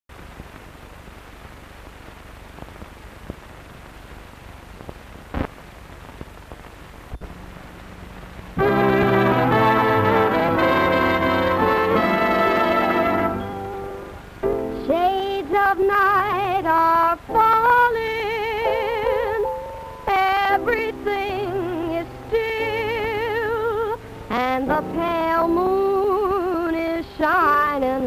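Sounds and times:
film soundtrack hiss with pops: 0.1 - 28.0
brass dance band playing: 8.6 - 14.7.

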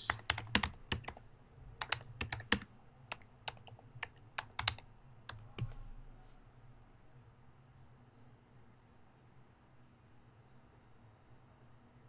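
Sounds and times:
computer keyboard typing: 0.0 - 5.9.

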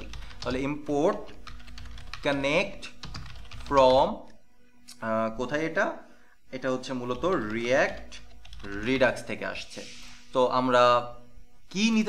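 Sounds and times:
typing on computer keyboard: 0.0 - 2.4, 3.0 - 4.0, 7.1 - 8.8.

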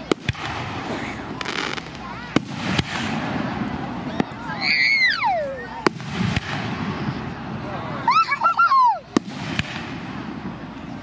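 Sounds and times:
firework bangs: 0.0 - 11.0.

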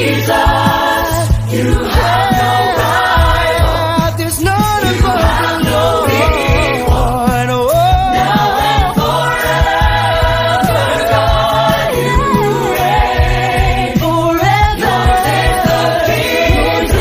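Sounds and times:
group singing devotional song: 0.0 - 17.0
instrumental backing with bass: 0.0 - 17.0.

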